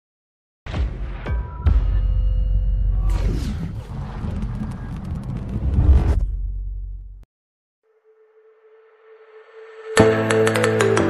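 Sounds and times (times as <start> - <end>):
deep continuous rumble: 2.9 - 7.3.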